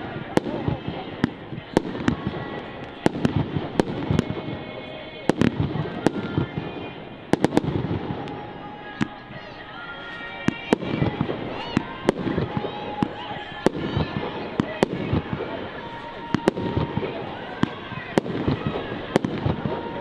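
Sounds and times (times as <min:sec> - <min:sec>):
continuous crackling: 0:00.0 - 0:20.0.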